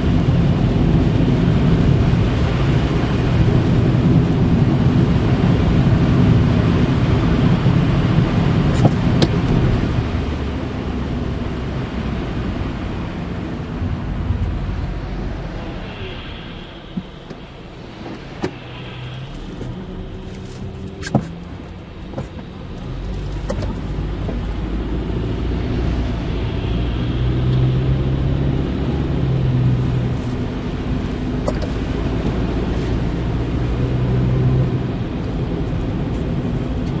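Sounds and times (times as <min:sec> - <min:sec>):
car engine hum: 0:00.0 - 0:37.0
road rumble on slushy road: 0:00.0 - 0:37.0
sharp clicks in car: 0:08.7 - 0:09.6, 0:21.0 - 0:21.4, 0:31.4 - 0:31.8.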